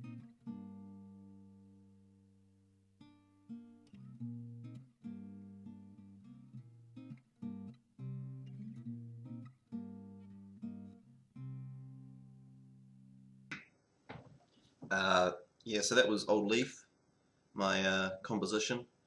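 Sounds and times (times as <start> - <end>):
acoustic guitar playing: 0.0 - 13.5.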